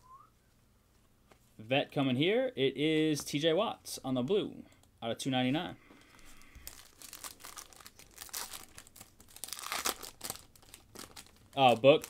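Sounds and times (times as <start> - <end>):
foil wrapper crinkling and tearing: 6.1 - 12.0.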